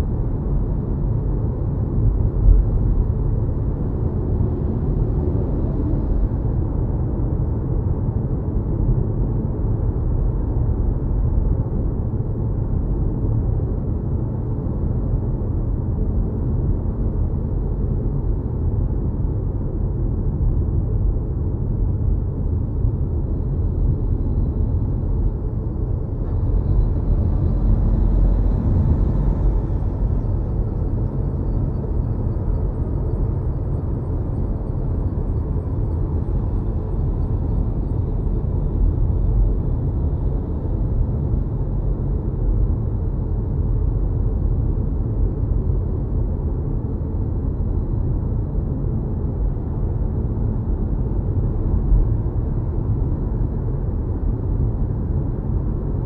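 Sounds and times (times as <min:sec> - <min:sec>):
road and tyre rumble in car: 0:00.0 - 0:56.0.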